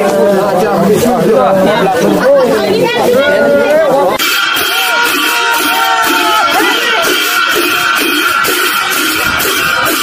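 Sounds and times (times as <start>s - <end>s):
several voices speaking: 0.0s - 10.0s.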